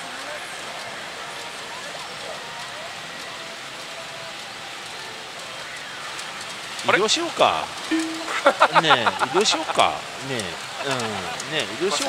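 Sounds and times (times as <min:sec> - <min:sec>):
faint electronic machine tones: 0:00.8 - 0:12.0
man's voice: 0:06.8 - 0:12.0.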